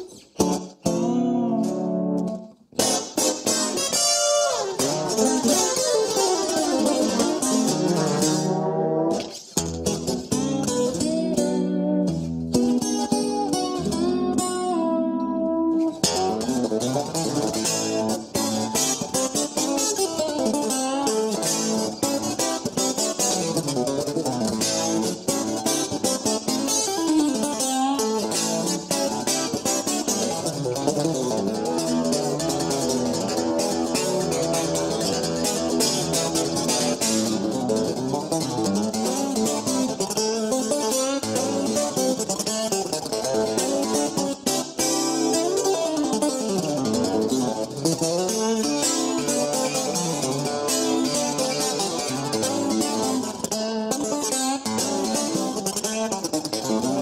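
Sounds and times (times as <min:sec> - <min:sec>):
solo guitar with sliding notes: 0:00.0 - 0:57.0.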